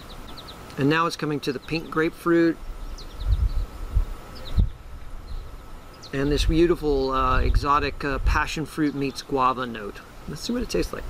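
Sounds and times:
faint bird chirps: 2.6 - 6.5.

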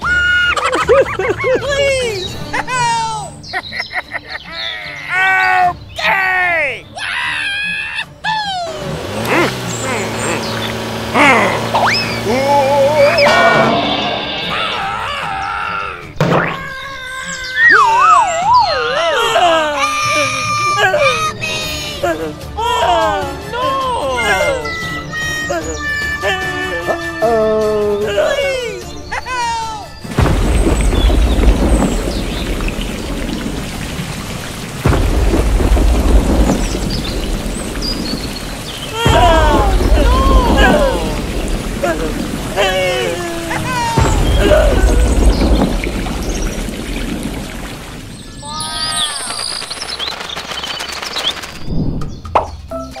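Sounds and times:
cartoon crying voice: 6.9 - 10.4, 14.6 - 29.9, 39.0 - 41.2, 42.6 - 44.8
heavy rain falling: 8.6 - 15.4, 30.0 - 51.8
short hit: 13.1 - 15.3
deep rumbling thunder: 30.1 - 48.5.

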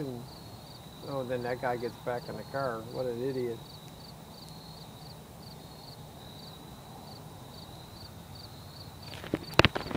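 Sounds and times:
crickets trilling: 0.0 - 9.9.

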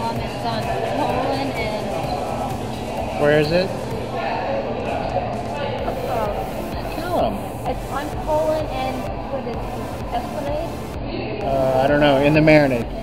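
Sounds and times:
background chatter of voices: 0.0 - 13.0.

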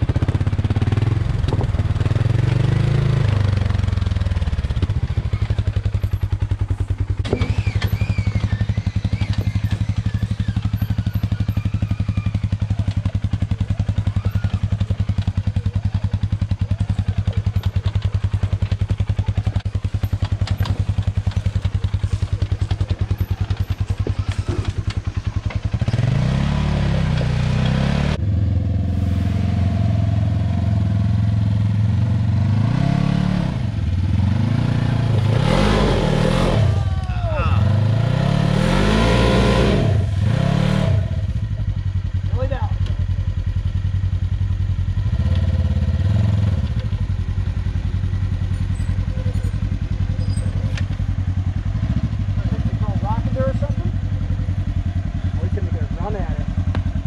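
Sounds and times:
utility vehicle engine revving: 0.0 - 57.0.

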